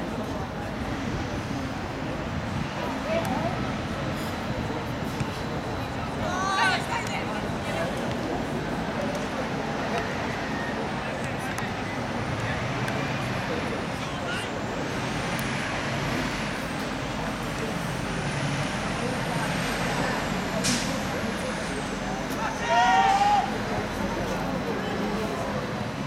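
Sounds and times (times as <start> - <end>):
distant players' voices: 0.0 - 26.0
distant traffic: 0.0 - 26.0
wind: 0.0 - 26.0.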